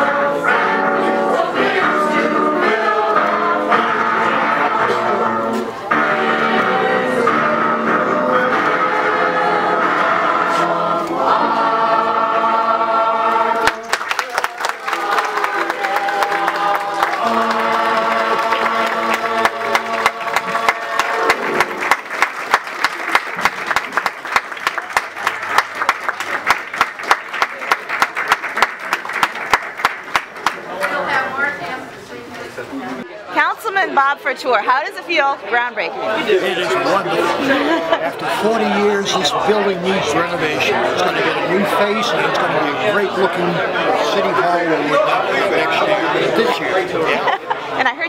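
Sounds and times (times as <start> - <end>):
mixed choir singing: 0.0 - 22.7, 33.4 - 47.8
hands clapping in time: 13.6 - 31.0.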